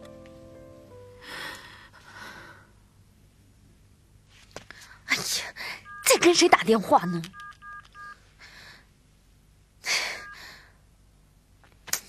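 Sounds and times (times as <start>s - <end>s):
phone keypad beeps: 5.8s - 6.5s, 7.2s - 8.2s, 10.2s - 10.4s
woman breathing upset: 8.4s - 8.9s, 9.8s - 10.8s.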